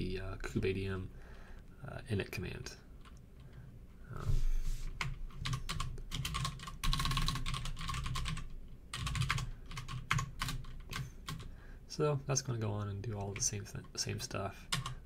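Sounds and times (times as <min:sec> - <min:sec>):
typing on computer keyboard: 0:05.0 - 0:11.5, 0:14.7 - 0:15.0.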